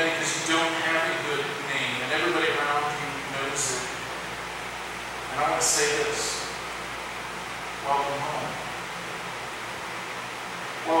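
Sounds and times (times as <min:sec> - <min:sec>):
man speaking: 0:00.0 - 0:04.0, 0:05.3 - 0:06.6, 0:07.8 - 0:08.7.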